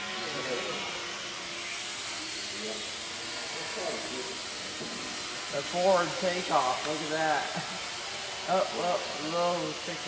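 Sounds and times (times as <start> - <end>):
quadcopter motors whirring: 0.0 - 10.0.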